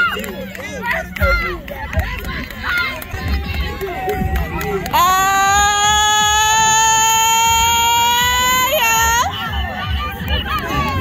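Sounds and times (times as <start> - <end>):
crowd chatter: 0.0 - 11.0
high-pitched cheering scream: 4.9 - 9.6.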